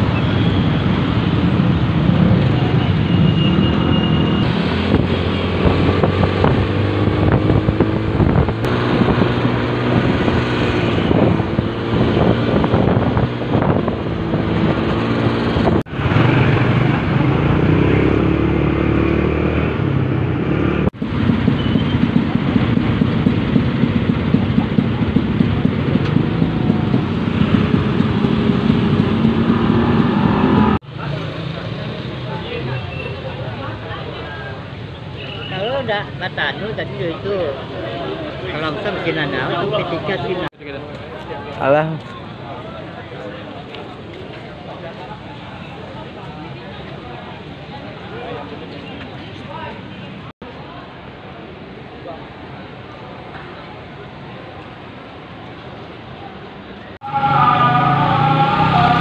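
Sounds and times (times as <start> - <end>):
road traffic: 0.0 - 59.0
motorcycle engine running: 21.0 - 29.9.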